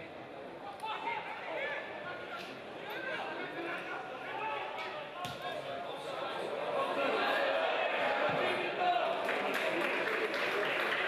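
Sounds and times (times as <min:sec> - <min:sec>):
voices on a pitch: 0:00.0 - 0:11.0.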